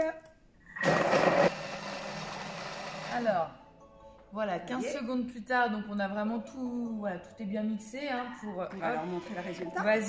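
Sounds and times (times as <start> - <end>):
food processor blending fruit: 0.8 - 3.3.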